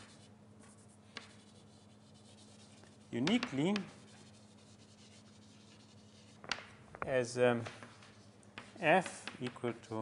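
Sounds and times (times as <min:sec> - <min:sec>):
writing scratching on a board: 0:00.0 - 0:06.4
low steady room hum: 0:00.0 - 0:10.0.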